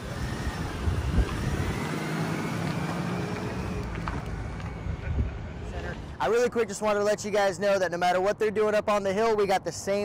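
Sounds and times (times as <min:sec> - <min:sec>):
pickup truck driving away: 0:00.2 - 0:06.2.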